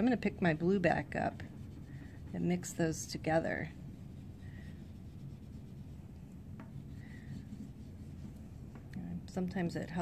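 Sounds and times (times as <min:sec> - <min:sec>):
low room rumble: 0:00.0 - 0:10.0
pastel scratching on paper: 0:00.4 - 0:08.8.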